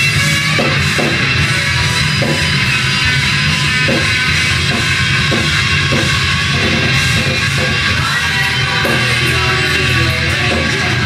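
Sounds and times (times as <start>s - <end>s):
drum kit: 0.0s - 11.0s
hard rock band playing: 0.0s - 11.0s.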